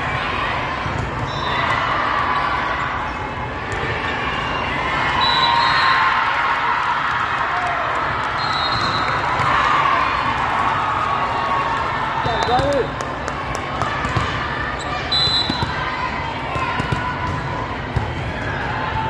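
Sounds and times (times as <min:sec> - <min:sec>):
high whistle-like tones: 0:05.2 - 0:06.0.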